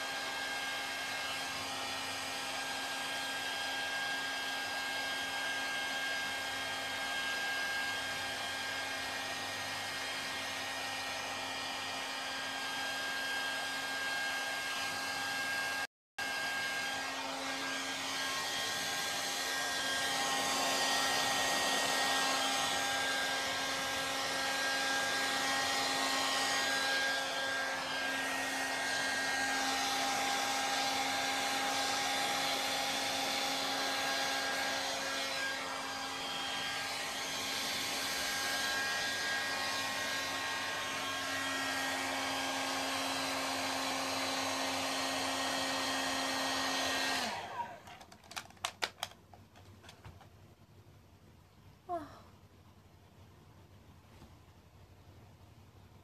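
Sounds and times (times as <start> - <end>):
hair dryer blowing: 0.0 - 49.2.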